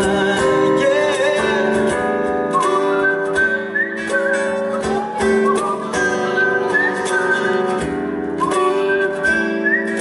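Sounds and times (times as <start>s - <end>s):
guitar accompaniment: 0.0s - 10.0s.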